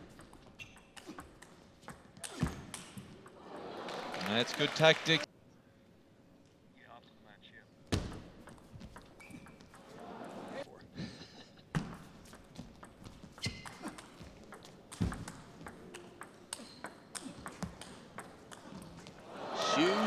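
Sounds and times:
shoes squeaking on floor: 0.0s - 3.2s, 8.6s - 10.0s, 11.9s - 18.0s.

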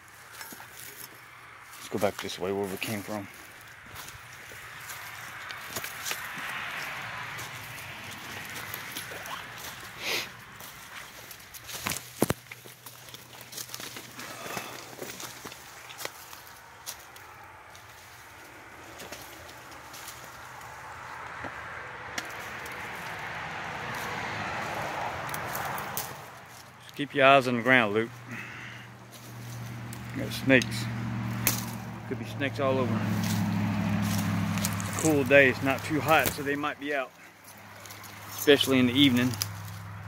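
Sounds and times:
footsteps crunching through dry leaves: 0.0s - 21.2s, 22.2s - 40.0s
twigs snapping: 0.2s - 26.8s, 28.1s - 32.0s, 33.0s - 39.9s.

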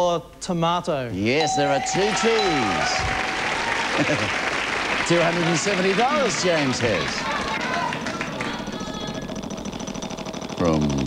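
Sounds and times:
prize wheel ticking: 1.4s - 11.0s.

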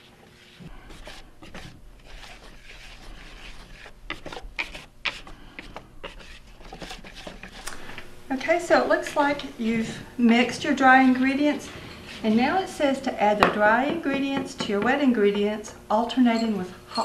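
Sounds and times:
whisk scraping through flour: 0.0s - 13.0s.

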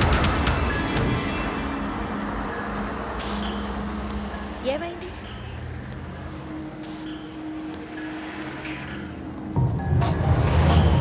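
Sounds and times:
bus engine humming: 0.0s - 11.0s
street traffic noise: 0.0s - 11.0s.

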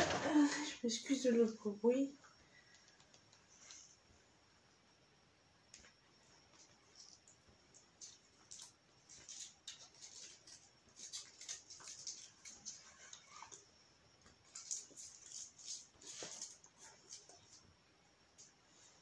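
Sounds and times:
packaging rustling and crinkling: 8.0s - 13.6s, 14.4s - 17.6s.

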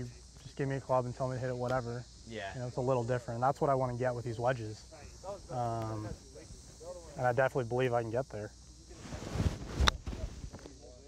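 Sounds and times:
golf club swing whoosh: 9.2s - 10.4s.

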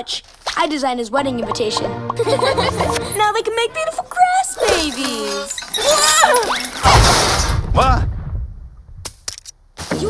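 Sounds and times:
cartoon crash with deep rumble: 6.8s - 9.0s.

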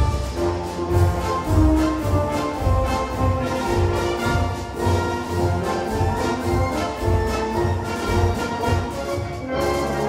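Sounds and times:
concert wind band playing: 0.0s - 10.0s.

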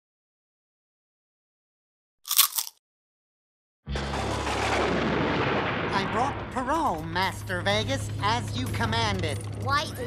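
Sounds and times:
cartoon thunderclap: 4.0s - 6.9s.

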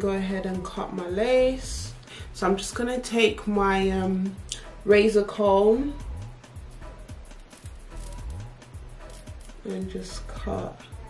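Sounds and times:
music with sliding bass line: 0.0s - 11.0s.

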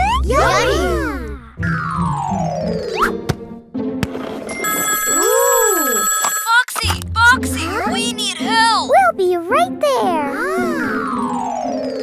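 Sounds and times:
cartoon character's voice: 0.0s - 1.5s
background music: 0.0s - 6.1s, 6.8s - 12.0s
cartoon telephone ringing: 4.5s - 6.8s.

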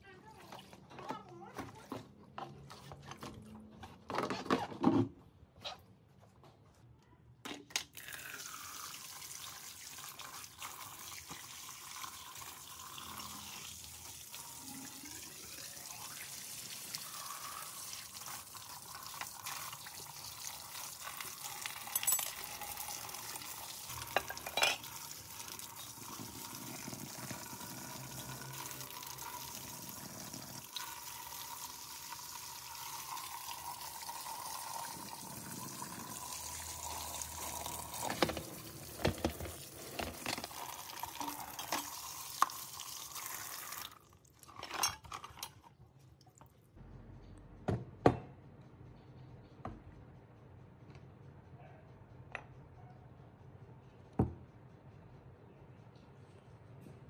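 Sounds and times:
water running from tap: 8.0s - 44.2s
water splashing over metal parts: 8.9s - 45.6s.

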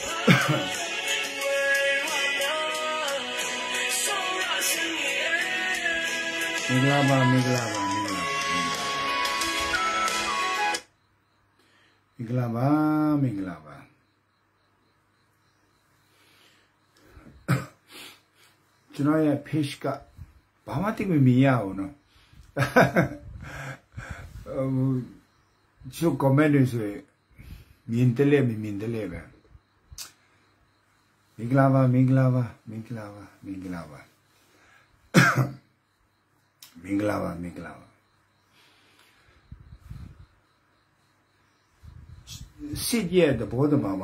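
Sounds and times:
man coughing: 0.3s - 0.7s, 17.4s - 17.9s, 35.1s - 35.6s
man talking: 6.6s - 9.2s, 12.2s - 13.9s, 19.0s - 20.1s, 20.7s - 22.0s, 24.5s - 25.2s, 25.8s - 27.0s, 27.9s - 29.4s, 31.4s - 34.1s, 36.7s - 37.9s, 42.3s - 44.0s
man clearing his throat: 17.4s - 17.8s, 35.1s - 35.6s.

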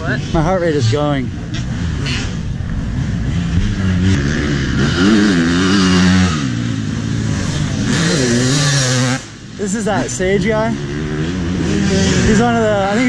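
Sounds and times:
dirt bike engines revving: 0.0s - 13.0s.

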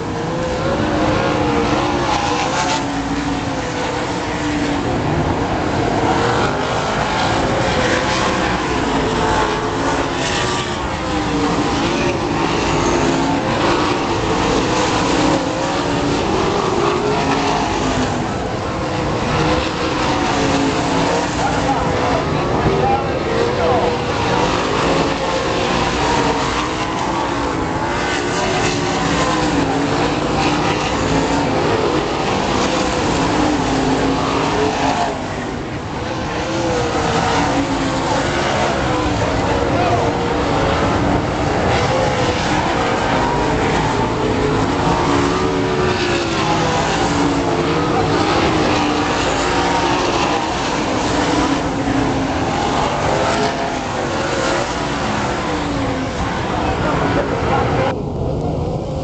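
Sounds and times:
race car engines revving: 0.0s - 59.0s.

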